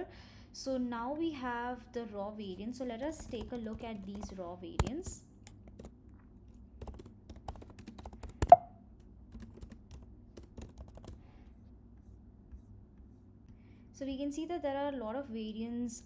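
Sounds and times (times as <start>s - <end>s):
typing on computer keyboard: 3.0s - 6.0s, 6.8s - 8.7s, 9.3s - 11.2s.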